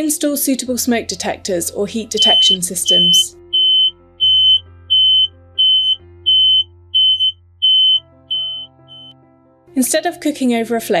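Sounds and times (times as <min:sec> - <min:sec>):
soft background music: 0:00.0 - 0:11.0
smoke alarm beeping: 0:02.2 - 0:09.1.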